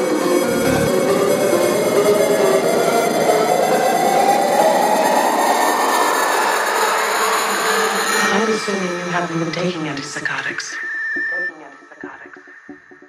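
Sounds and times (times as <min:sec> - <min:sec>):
rising noisy synth sweep: 0:00.0 - 0:09.6.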